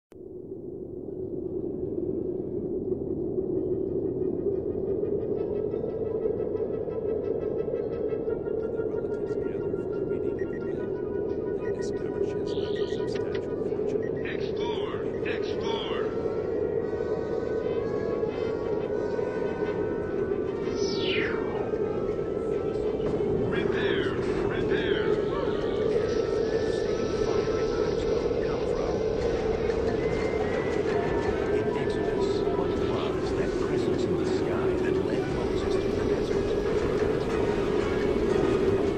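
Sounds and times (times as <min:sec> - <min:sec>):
dark ambient drone: 0:00.1 - 0:38.9
faint gliding cries: 0:00.6 - 0:38.9.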